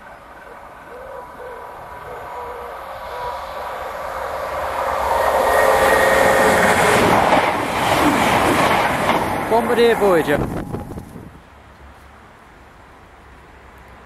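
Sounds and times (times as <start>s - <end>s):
train passing at speed: 0.0s - 14.0s.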